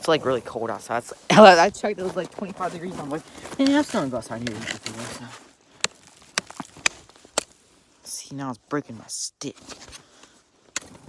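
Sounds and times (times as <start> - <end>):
stick cracking shale rock: 3.5 - 7.6, 10.7 - 11.0.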